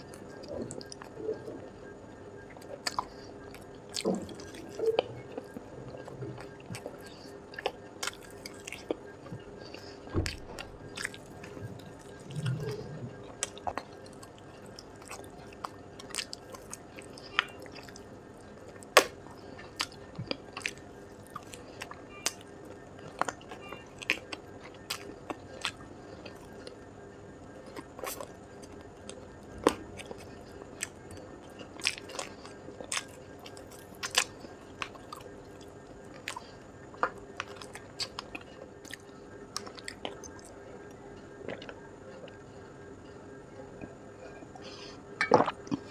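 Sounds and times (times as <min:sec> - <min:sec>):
faint steady hum: 0:00.0 - 0:45.9
biting and chewing: 0:02.5 - 0:26.8, 0:27.6 - 0:40.5, 0:41.4 - 0:42.4.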